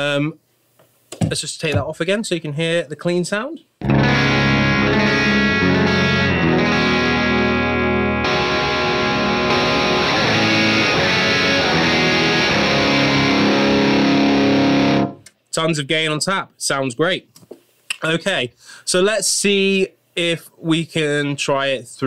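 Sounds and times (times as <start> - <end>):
overdriven electric guitar chords: 3.8 - 15.3.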